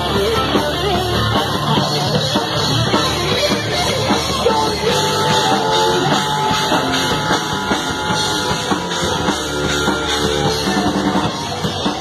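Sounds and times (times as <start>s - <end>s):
drum kit beat: 0.0s - 12.0s
electric guitars: 0.0s - 12.0s.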